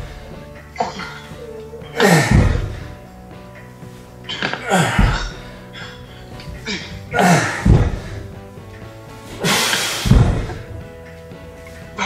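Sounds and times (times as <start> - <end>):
man grunting breaths: 0.0 - 3.1, 4.6 - 8.4
background music with steady tones: 0.0 - 12.0
low thud: 2.3 - 2.9, 7.6 - 8.2, 10.0 - 10.9.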